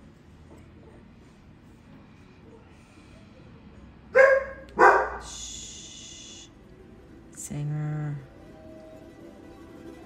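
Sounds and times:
dog barking: 0:04.1 - 0:05.3.

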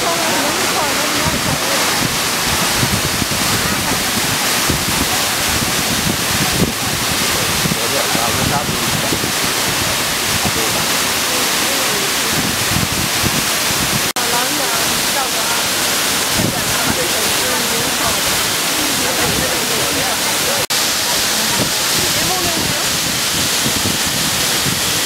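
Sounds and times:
faint voices: 0:00.0 - 0:13.0, 0:13.6 - 0:25.0
waterfall rushing: 0:00.0 - 0:25.0.

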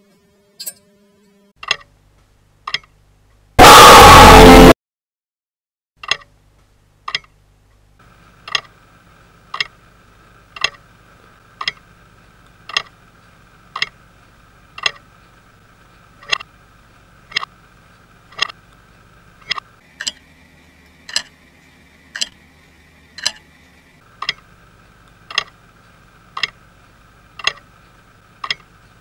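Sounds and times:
faint steady hum: 0:06.2 - 0:29.0
wall clock ticking: 0:09.5 - 0:09.8, 0:10.5 - 0:10.8, 0:11.6 - 0:11.8, 0:12.6 - 0:13.0, 0:14.8 - 0:15.1, 0:22.2 - 0:22.4, 0:23.2 - 0:23.4, 0:25.3 - 0:25.6, 0:26.3 - 0:26.6, 0:27.4 - 0:27.7, 0:28.4 - 0:28.7.

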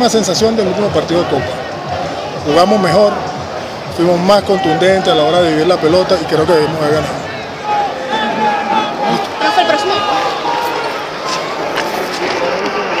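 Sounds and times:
overlapping background chatter: 0:00.0 - 0:13.0.

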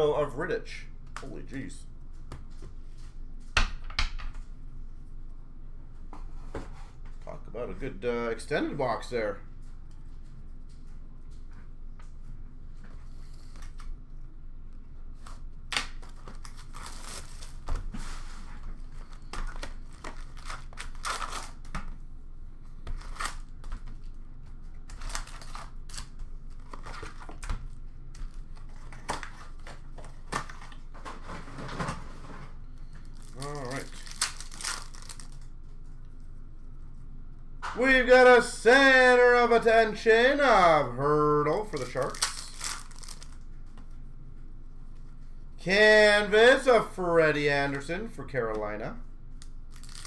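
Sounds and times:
wrappers crinkling and tearing: 0:16.0 - 0:17.6, 0:19.8 - 0:21.7, 0:24.9 - 0:27.5, 0:33.0 - 0:35.6, 0:41.7 - 0:43.4, 0:49.7 - 0:50.0.

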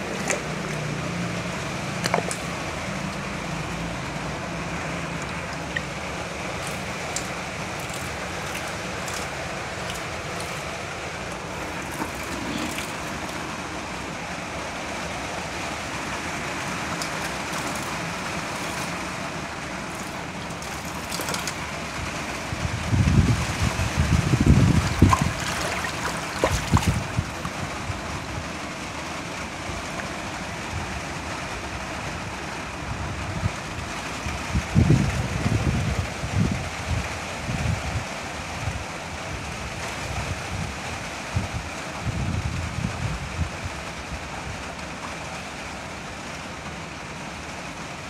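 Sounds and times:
water pouring and splashing: 0:00.0 - 0:38.0, 0:39.6 - 0:48.0.

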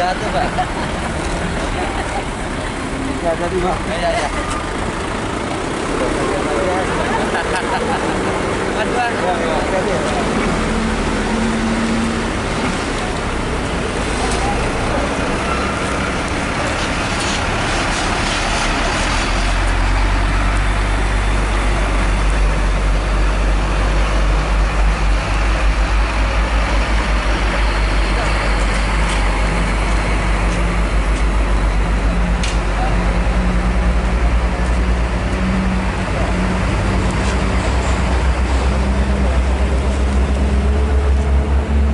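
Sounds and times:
deep engine rumble: 0:00.0 - 0:41.9
road traffic: 0:00.0 - 0:41.9.

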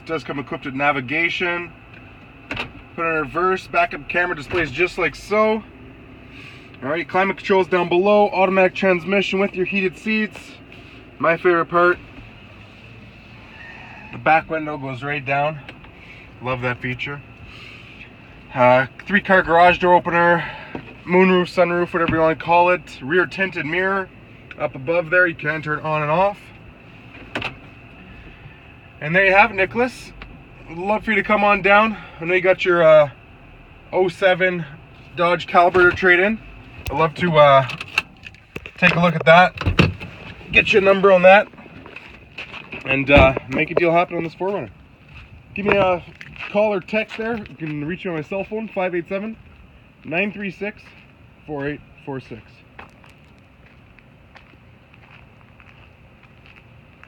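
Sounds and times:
car engine idling: 0:00.0 - 0:57.0
outdoor background noise: 0:00.0 - 0:57.0
footsteps on gravel: 0:40.4 - 0:48.3, 0:52.6 - 0:57.0.

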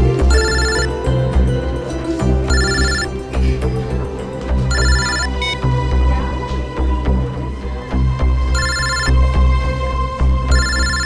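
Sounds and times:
background music with low beat: 0:00.0 - 0:11.0
mobile phone ringtone trilling: 0:00.3 - 0:01.0, 0:02.5 - 0:03.1, 0:04.7 - 0:05.6, 0:08.6 - 0:09.2, 0:10.5 - 0:11.0.

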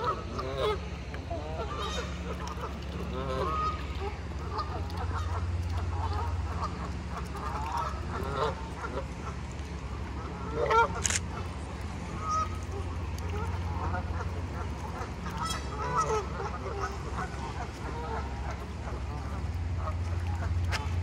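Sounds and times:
geese honking: 0:00.0 - 0:09.4, 0:10.2 - 0:11.0, 0:12.0 - 0:21.0.

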